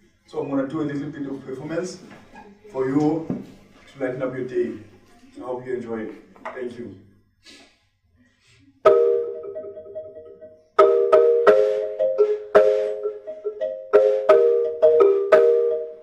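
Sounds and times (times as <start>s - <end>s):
marimba played with mallets: 8.8s - 16.0s.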